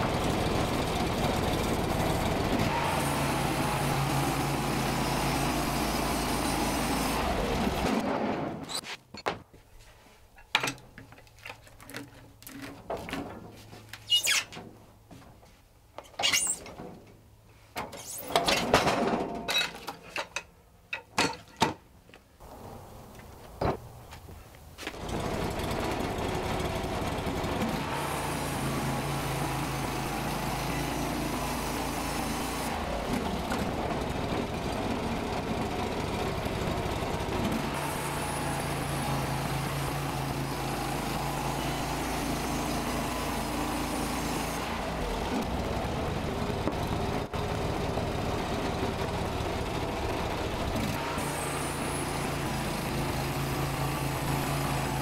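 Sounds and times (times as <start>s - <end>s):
sawmill engine running under load: 0.0s - 8.7s, 25.0s - 55.0s.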